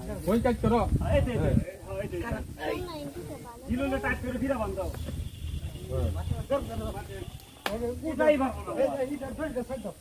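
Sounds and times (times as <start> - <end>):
men talking and calling out: 0.0 - 10.0.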